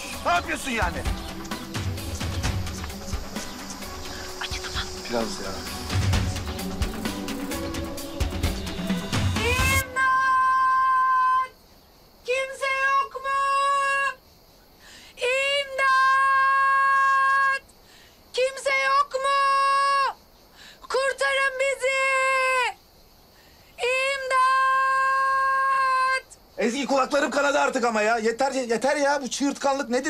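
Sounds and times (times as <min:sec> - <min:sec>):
woman shouting: 0:09.4 - 0:11.6, 0:12.3 - 0:14.2, 0:15.2 - 0:17.7, 0:18.4 - 0:20.2, 0:20.9 - 0:22.8, 0:23.8 - 0:26.4.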